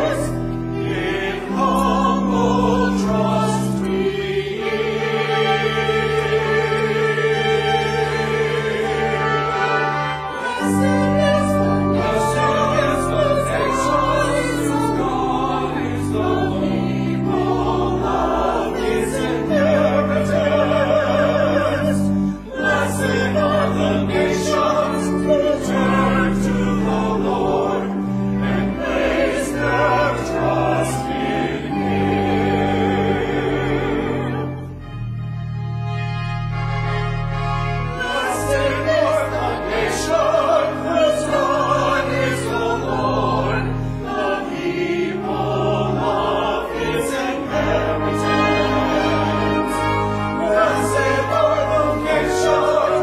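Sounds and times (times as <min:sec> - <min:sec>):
church choir singing: 0:00.0 - 0:53.0
organ bass notes: 0:00.0 - 0:53.0.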